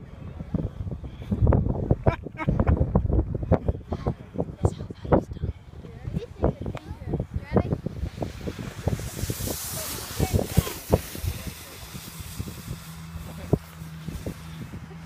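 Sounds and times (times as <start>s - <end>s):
wind buffeting microphone: 0.0s - 15.0s
sled hissing over snow: 7.5s - 15.0s.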